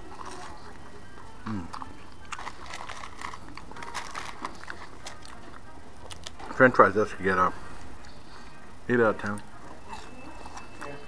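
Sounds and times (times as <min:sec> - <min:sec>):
faint background music: 0:00.0 - 0:11.0
person chewing fries: 0:00.0 - 0:11.0
small clicks and crackles: 0:02.2 - 0:06.4.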